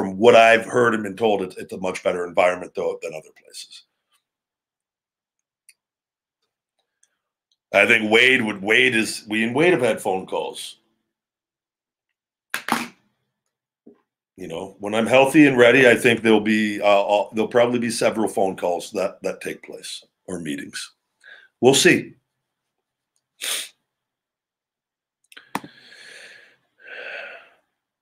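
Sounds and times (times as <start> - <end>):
man's sharp nasal exhale: 23.4 - 23.8, 25.6 - 27.6.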